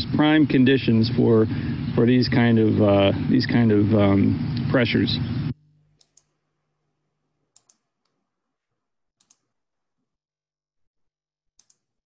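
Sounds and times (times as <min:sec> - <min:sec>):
voice: 0:00.0 - 0:05.3
computer mouse double clicks: 0:09.2 - 0:09.4, 0:11.6 - 0:11.9.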